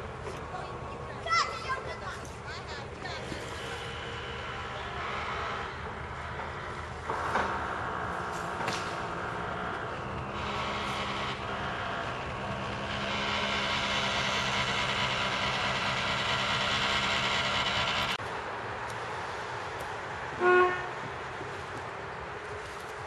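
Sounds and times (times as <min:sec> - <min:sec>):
excavator diesel engine running: 0:00.0 - 0:18.2
steady background noise: 0:00.0 - 0:23.0.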